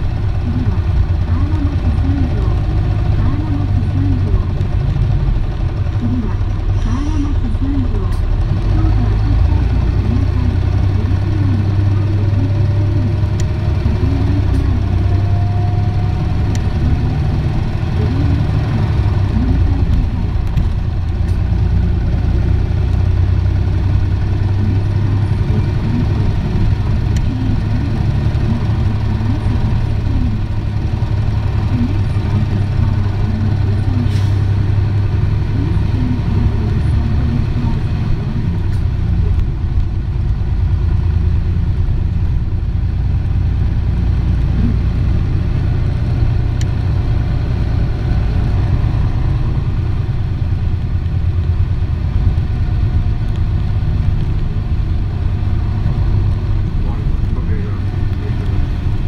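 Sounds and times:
bus engine and road rumble: 0.0 - 59.0.

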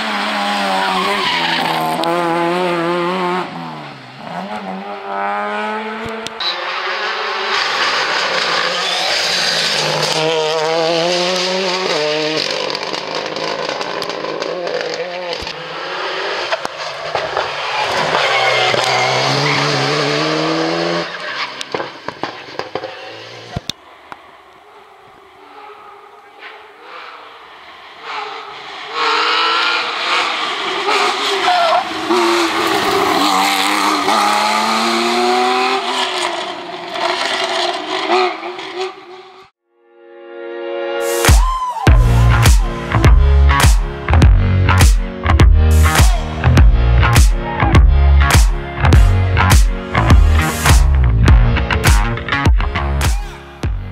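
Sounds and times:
rally cars passing at speed: 0.0 - 39.5.

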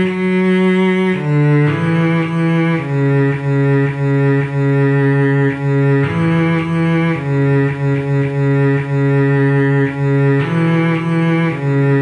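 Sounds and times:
cello playing slow melody: 0.0 - 12.0.

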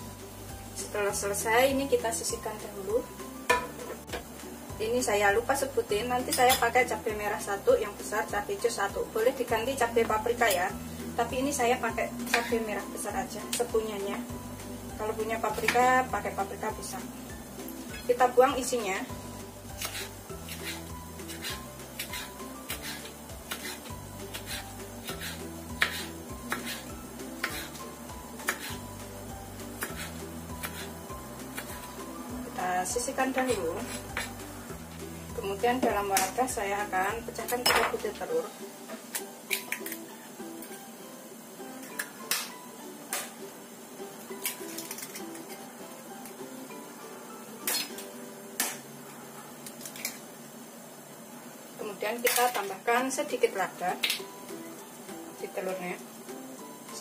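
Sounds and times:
background music: 0.0 - 49.3, 51.8 - 57.0
eggshells cracking: 44.4 - 45.4.

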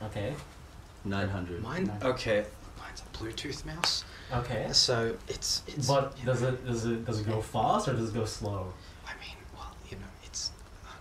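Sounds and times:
person talking softly: 1.1 - 11.0.

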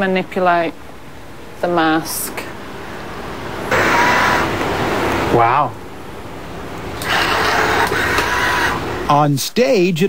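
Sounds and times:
servo motors whirring: 3.7 - 4.6, 7.0 - 8.8.

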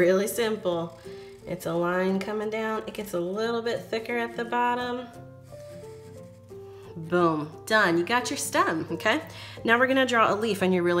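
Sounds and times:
soft background melody: 0.0 - 11.0.

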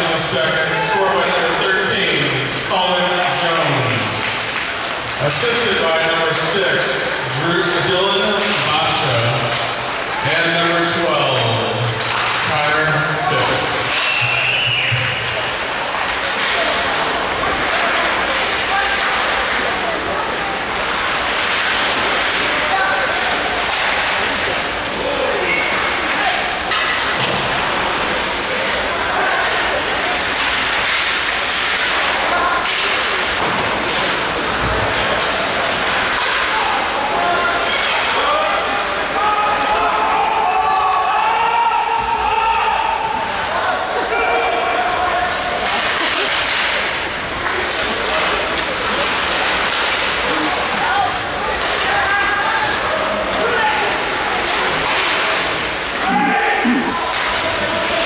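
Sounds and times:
hubbub of spectators' voices: 0.0 - 58.0
puck and sticks knocking boards: 11.4 - 24.8, 26.1 - 28.1, 29.2 - 38.6, 45.3 - 58.0.

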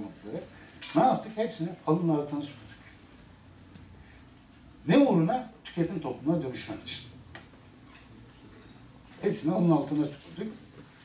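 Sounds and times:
low steady hum and hiss: 0.0 - 11.0.

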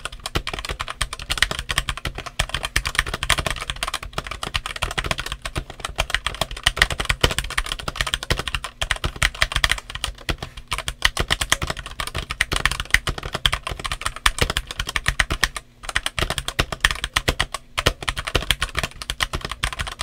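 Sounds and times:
mechanical keyboard typing: 0.0 - 20.0.

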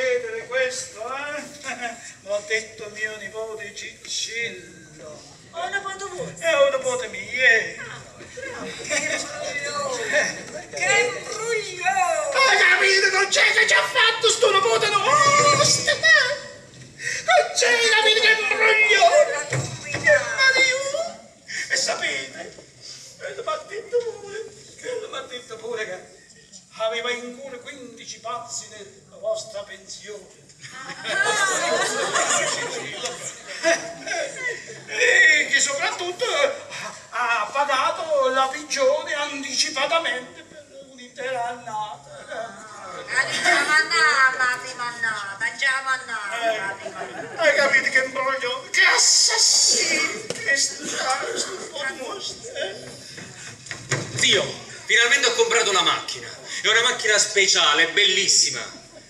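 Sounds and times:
actors talking on stage: 0.0 - 59.0.

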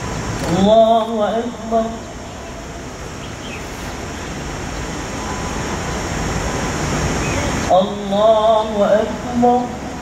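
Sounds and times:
rushing rumbling outdoor noise: 0.0 - 10.0.

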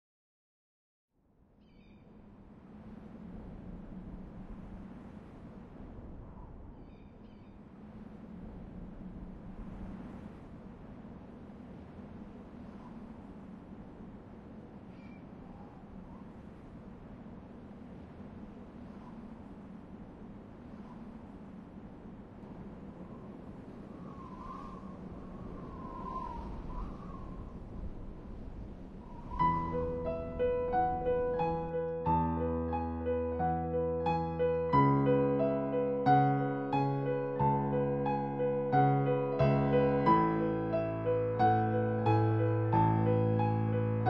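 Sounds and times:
low rushing outdoor ambience: 1.3 - 44.0
bird wavering calls: 1.6 - 2.1.

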